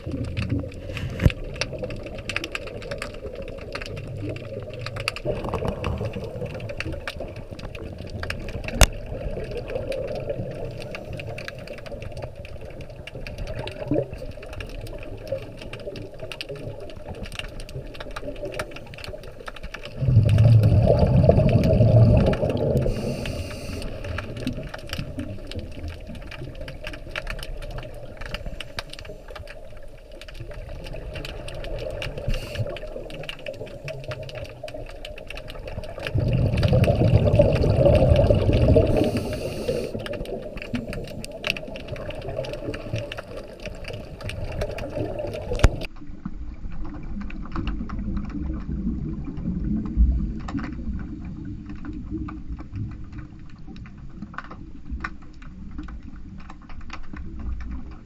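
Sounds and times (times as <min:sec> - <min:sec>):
bubbles from diver exhaling: 0:00.0 - 0:12.0, 0:19.9 - 0:26.8, 0:30.5 - 0:45.9
faint crackle of water: 0:00.0 - 0:58.0
hiss of inhalation: 0:22.8 - 0:24.2, 0:32.3 - 0:32.9, 0:38.7 - 0:40.2.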